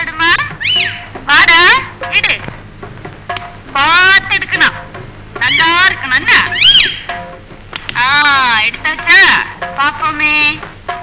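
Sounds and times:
parakeet squawking: 0:00.2 - 0:02.4, 0:05.4 - 0:07.2.

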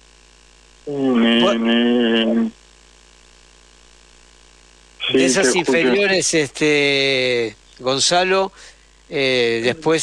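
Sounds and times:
faint electrical hum and hiss: 0:00.0 - 0:10.0.

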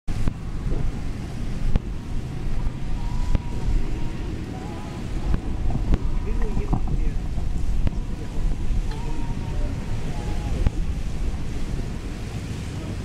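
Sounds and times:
wind buffeting microphone: 0:00.1 - 0:13.0.

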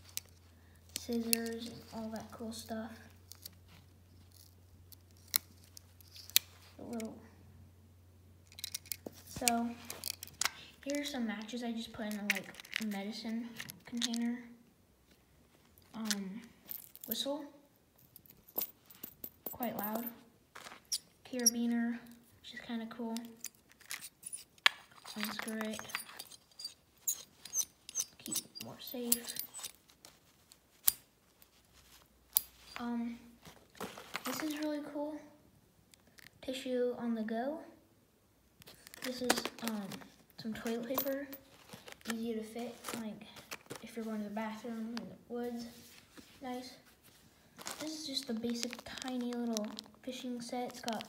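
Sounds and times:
carabiner metal clicks and scrapes: 0:00.0 - 0:02.3, 0:03.2 - 0:03.6, 0:04.2 - 0:07.1, 0:08.4 - 0:11.2, 0:12.1 - 0:14.3, 0:23.1 - 0:32.8.

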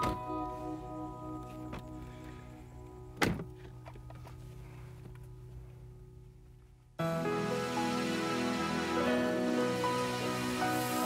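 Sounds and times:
keyboard background music: 0:00.0 - 0:11.0
car door shutting: 0:03.2 - 0:04.3.

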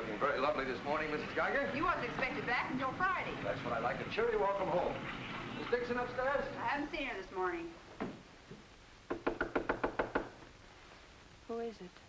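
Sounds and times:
knuckles knocking on wooden door: 0:09.1 - 0:10.4.

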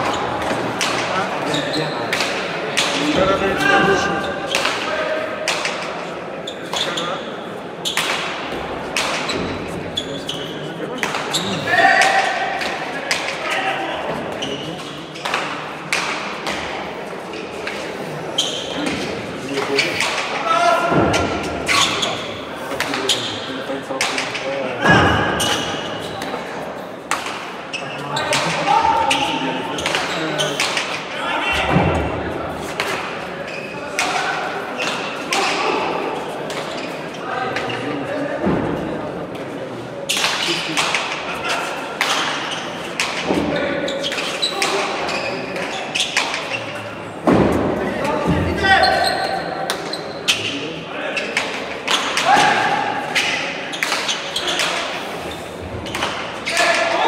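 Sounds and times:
voices in hall: 0:00.0 - 0:57.0
ball smacks echoing off walls: 0:07.9 - 0:09.6.

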